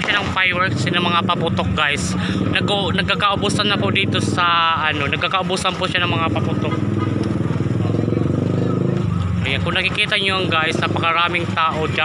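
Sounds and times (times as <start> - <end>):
vehicle engine droning: 0.0 - 12.0.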